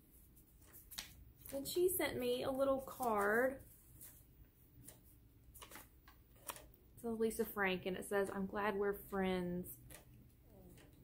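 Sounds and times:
paper card rustling and clicking: 0.2s - 6.8s, 9.7s - 11.0s.

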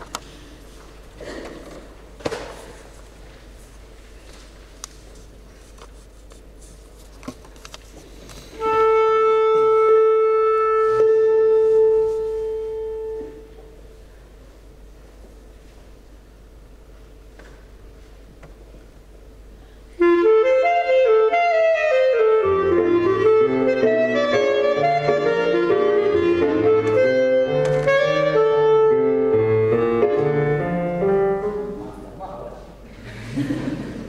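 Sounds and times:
clarinet melody: 8.6s - 14.0s, 20.0s - 31.8s
piano bass notes: 8.6s - 14.1s, 20.0s - 32.6s.

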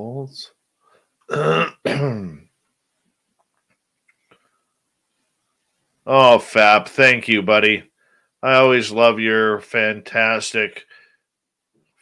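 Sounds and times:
man clearing his throat: 1.3s - 2.5s.

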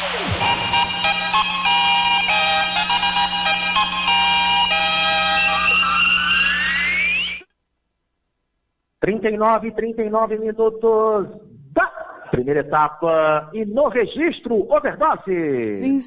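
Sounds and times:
rising sweep: 0.0s - 7.4s
electronic radio jingle: 0.0s - 7.5s.

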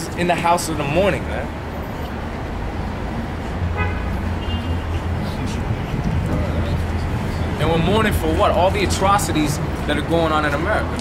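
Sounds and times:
low engine drone of traffic: 0.0s - 11.0s
vehicle horn toot: 3.8s - 5.0s.

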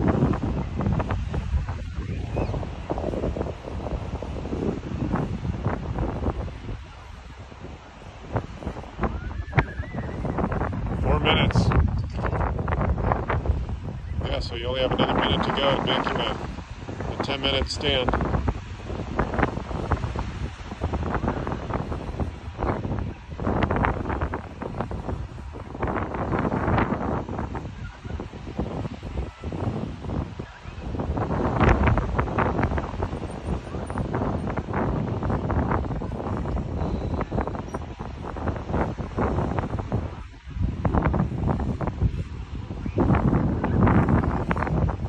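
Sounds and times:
rumbling and rustling on microphone: 0.0s - 45.0s.

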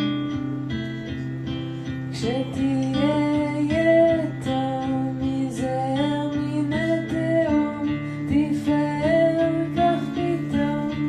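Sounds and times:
acoustic guitar strumming: 0.0s - 11.0s
person singing: 2.1s - 11.0s.

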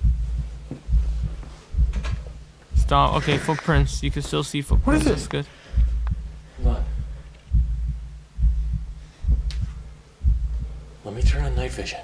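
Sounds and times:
deep heartbeat thumping: 0.0s - 11.8s.

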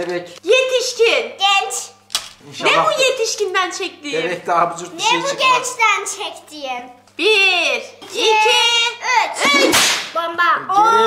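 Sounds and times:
excited high-pitched voices: 4.9s - 11.0s.

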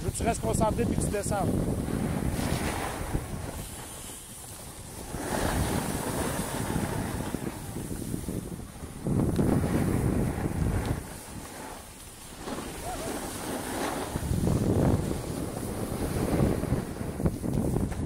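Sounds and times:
skis sliding on snow: 0.0s - 18.0s
wind buffeting microphone: 0.0s - 18.0s.

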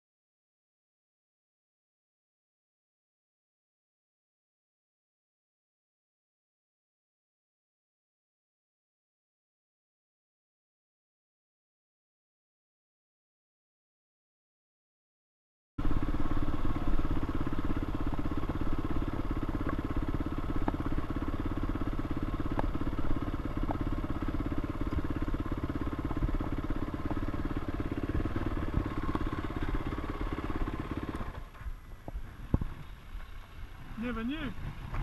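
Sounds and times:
motorcycle engine at low revs: 15.8s - 35.0s.

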